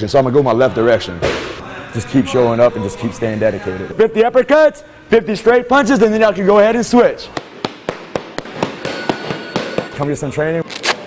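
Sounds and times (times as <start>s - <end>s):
boxing gloves hitting pads: 7.4s - 10.0s.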